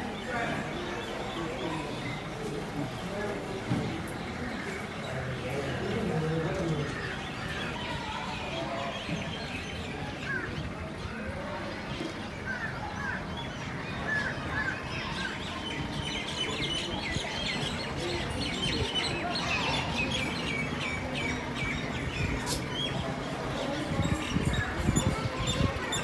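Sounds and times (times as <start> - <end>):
birds chirping: 0.0 - 26.0.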